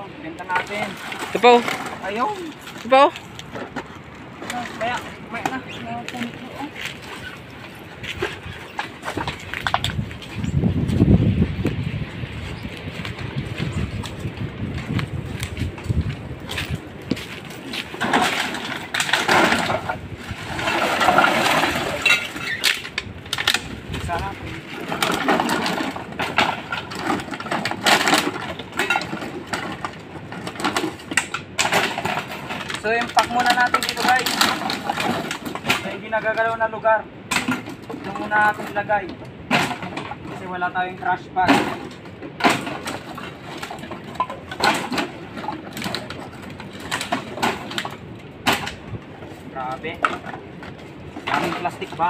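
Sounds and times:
plastic bottles knocking and crackling: 0:00.4 - 0:10.4, 0:13.2 - 0:36.5, 0:37.2 - 0:40.7, 0:41.4 - 0:52.0.

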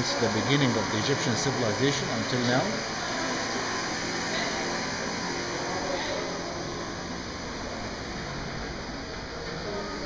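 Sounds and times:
background hum of gallery: 0:00.0 - 0:10.0.

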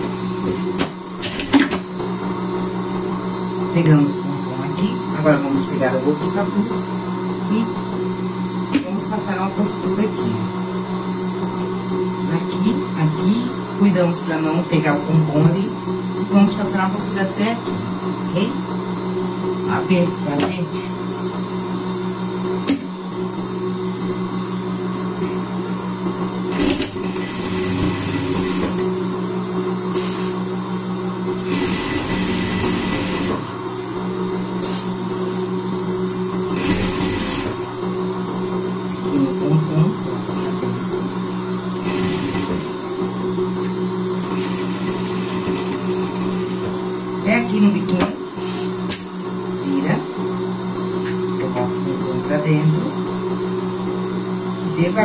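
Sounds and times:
steady motor hum: 0:00.0 - 0:55.0
sewing machine stitching: 0:00.8 - 0:01.8, 0:26.5 - 0:28.9, 0:31.4 - 0:33.5, 0:36.5 - 0:37.6, 0:41.8 - 0:42.8, 0:44.3 - 0:46.6.

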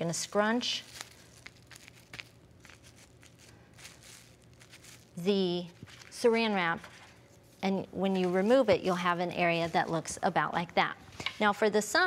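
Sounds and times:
plastic wrap crinkling: 0:00.0 - 0:10.3.

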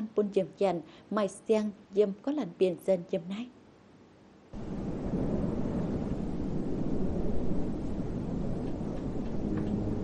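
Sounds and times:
wind buffeting microphone: 0:04.6 - 0:10.0.

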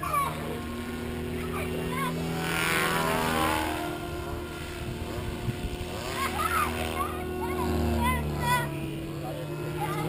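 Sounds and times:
rc helicopter rotor drone: 0:00.0 - 0:10.0.

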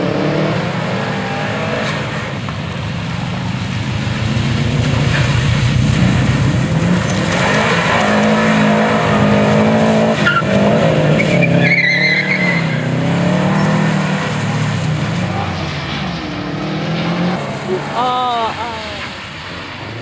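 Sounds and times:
car engine revving: 0:00.0 - 0:20.0
tyre squeal: 0:10.2 - 0:14.0.

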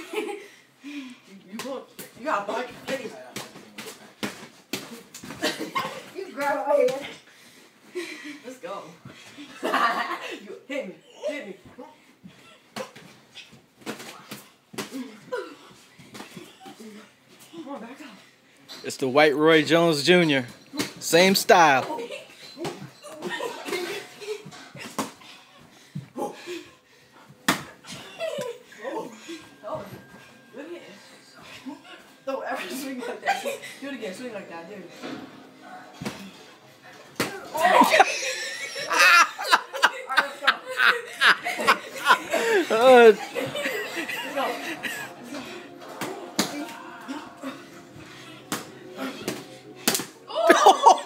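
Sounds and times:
boxing gloves smacking: 0:48.5 - 0:50.2.

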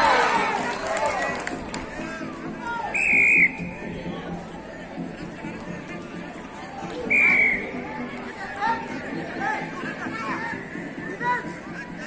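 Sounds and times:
people talking and shouting: 0:00.0 - 0:12.0.

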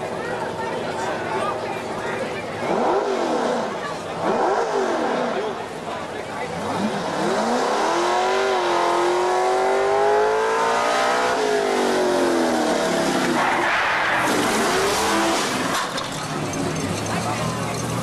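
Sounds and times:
engine revving hard: 0:02.6 - 0:05.6, 0:06.5 - 0:16.0.

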